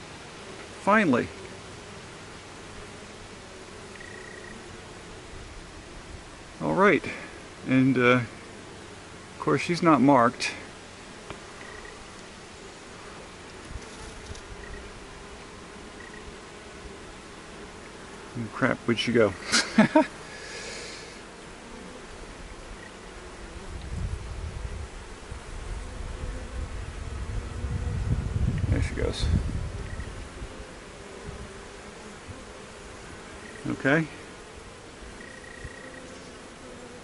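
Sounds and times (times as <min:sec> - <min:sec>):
honeybees buzzing: 0:00.0 - 0:37.0.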